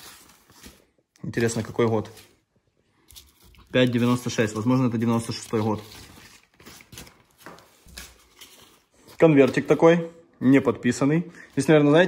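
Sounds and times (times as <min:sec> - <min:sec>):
newspaper rustling: 0:00.0 - 0:09.9.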